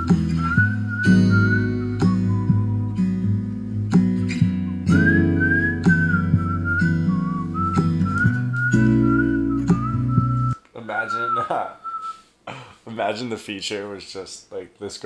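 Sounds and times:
whistled melody: 0.0 - 3.5, 4.2 - 12.2
strummed acoustic guitar: 0.0 - 10.5.

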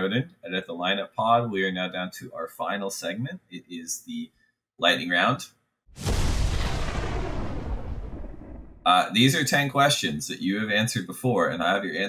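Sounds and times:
deep boom sound effect: 6.0 - 9.0.

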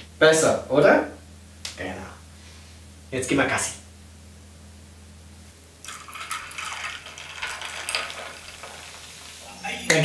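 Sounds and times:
cola pouring and fizzing: 5.8 - 9.4.

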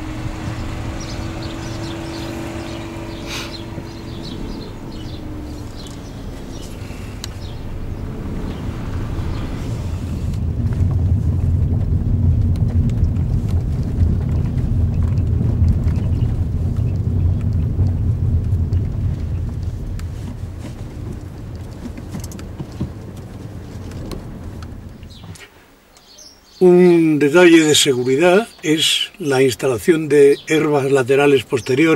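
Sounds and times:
tyre noise: 0.0 - 25.6
car engine rumble from cabin: 0.0 - 25.9.

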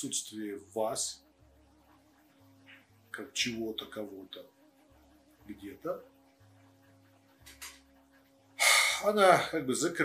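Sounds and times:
man's sharp intake of breath: 8.6 - 9.1.

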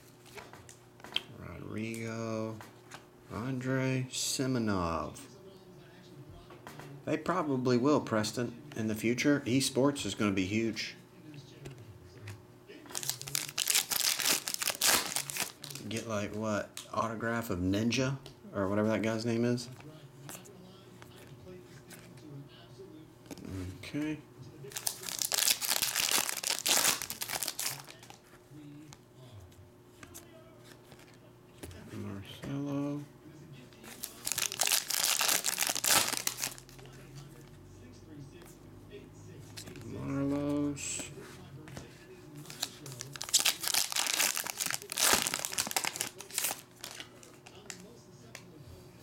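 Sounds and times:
foil wrapper tearing and crinkling: 12.9 - 16.0, 24.7 - 28.2, 33.9 - 36.8, 42.4 - 47.8.

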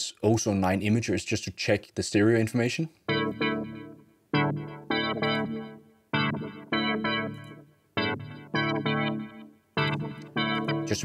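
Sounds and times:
synthesized chord stabs: 3.1 - 11.0.

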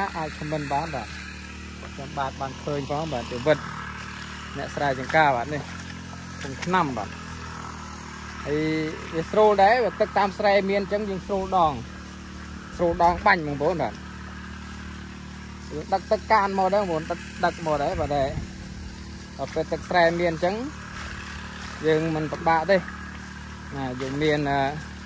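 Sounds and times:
man speaking: 0.0 - 1.2, 1.9 - 3.6, 8.5 - 11.9, 12.7 - 14.0, 15.6 - 18.4, 19.4 - 20.7, 21.8 - 22.9, 23.7 - 24.8
man talking: 0.0 - 1.2, 1.8 - 3.6, 4.6 - 5.8, 6.4 - 7.2, 8.4 - 11.9, 12.7 - 14.0, 15.6 - 18.5, 19.4 - 20.8, 21.8 - 22.9, 23.7 - 24.9
small engine droning: 0.0 - 25.0.

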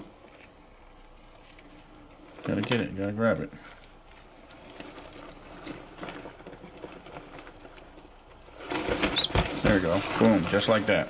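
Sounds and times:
faint clicks and rustling: 0.0 - 11.0
mouse squeaking: 5.2 - 6.0, 8.7 - 9.4.

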